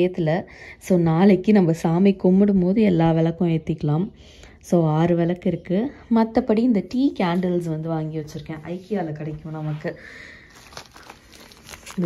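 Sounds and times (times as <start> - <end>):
plastic wrapping crinkling: 8.4 - 12.0.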